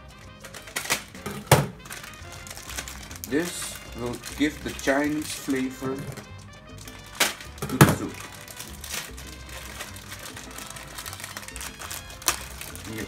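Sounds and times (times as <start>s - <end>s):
plastic packet crinkling: 0.0s - 13.0s
quiet background music: 0.0s - 13.0s.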